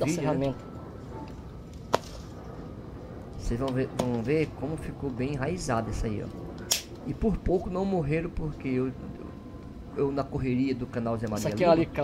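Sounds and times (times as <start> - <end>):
pliers snapping through wire: 6.7 - 7.0.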